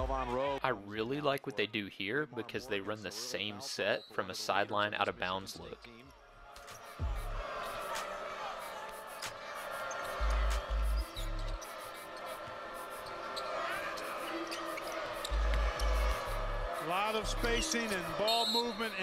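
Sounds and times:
crowd in arena: 0.0 - 19.0.

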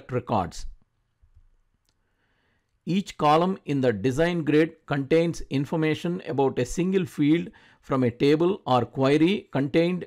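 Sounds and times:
person speaking: 0.0 - 1.1, 2.8 - 10.0.

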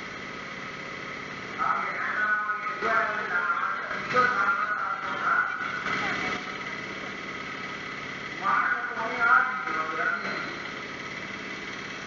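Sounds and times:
steady mechanical hum: 0.0 - 12.0
person speaking: 1.6 - 6.7.

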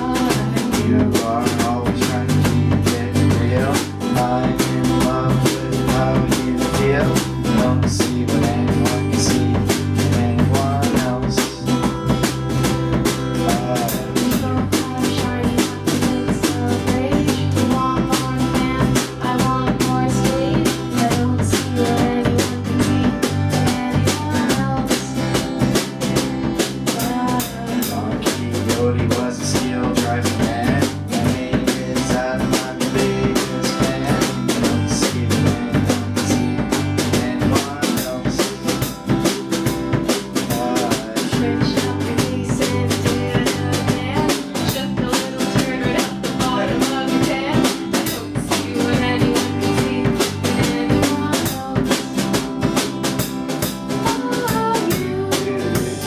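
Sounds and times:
acoustic guitar: 0.0 - 56.0
bass guitar: 0.0 - 56.0
drum kit beat: 0.0 - 56.0
small band playing live: 0.0 - 56.0.

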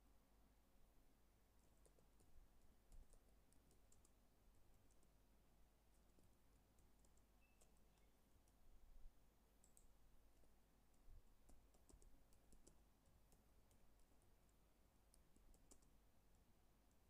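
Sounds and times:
keyboard keys typing: 1.6 - 5.1, 5.9 - 8.6, 9.6 - 16.0.

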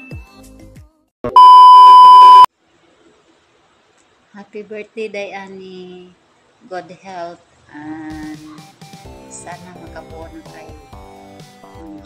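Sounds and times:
loud electronic beep: 1.3 - 2.5.

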